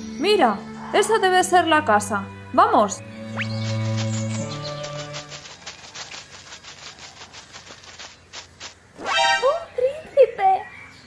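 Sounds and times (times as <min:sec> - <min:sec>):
quick light scuffing footsteps: 0:03.6 - 0:09.0.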